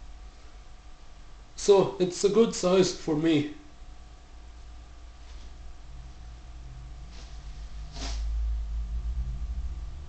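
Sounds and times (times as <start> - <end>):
low rumbling movement noise: 5.1 - 10.0
sword whooshing through air: 7.1 - 8.4.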